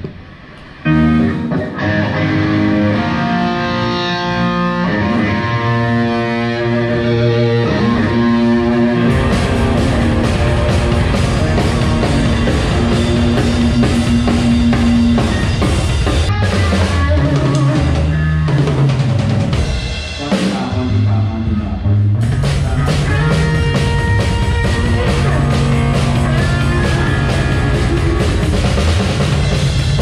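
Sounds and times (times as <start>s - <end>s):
rock band playing: 0.0s - 30.0s
drum kit beat: 7.8s - 21.1s, 22.2s - 30.0s.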